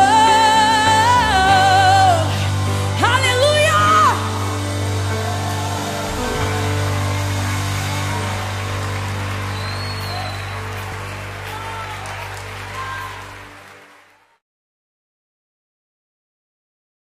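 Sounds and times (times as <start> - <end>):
worship band sustained chord: 0.0 - 14.0
deep bass note: 1.1 - 13.4.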